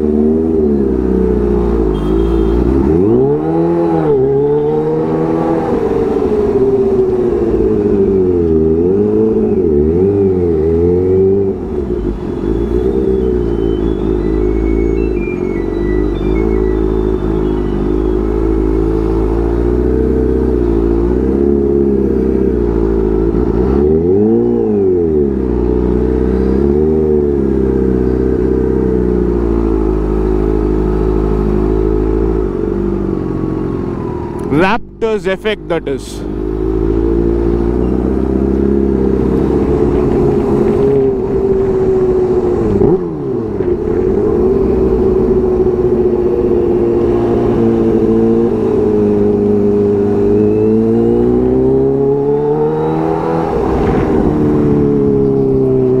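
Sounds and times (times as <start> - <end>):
motorcycle engine revving: 0.0 - 35.0, 36.1 - 56.0.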